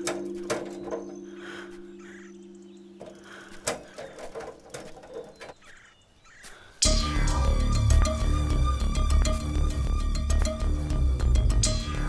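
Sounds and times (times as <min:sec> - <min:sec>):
birds calling faintly: 0:00.0 - 0:09.4
light clicks and knocks: 0:03.0 - 0:05.7.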